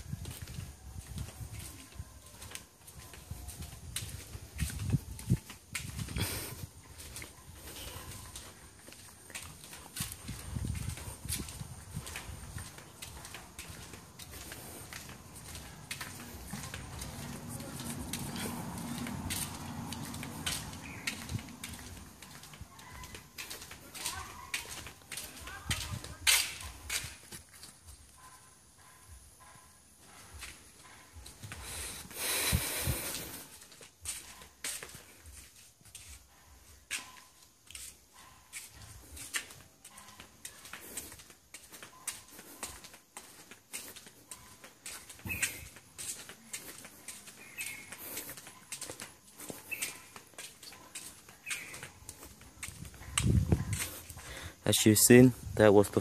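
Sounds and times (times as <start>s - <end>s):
faint background voices: 0.1s - 56.0s.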